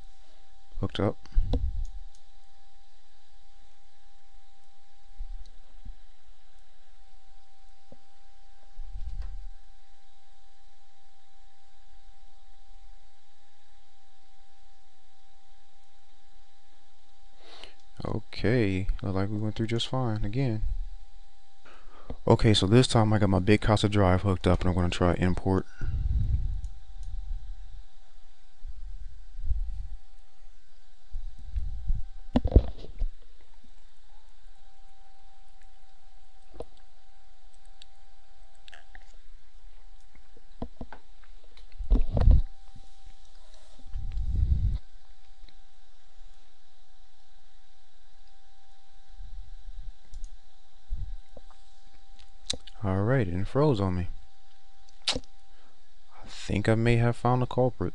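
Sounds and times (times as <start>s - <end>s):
steady hum with held tone: 0.0s - 57.9s
low rumbling on microphone: 1.2s - 2.0s, 24.6s - 27.8s, 28.5s - 33.2s, 38.7s - 45.1s, 50.8s - 51.6s.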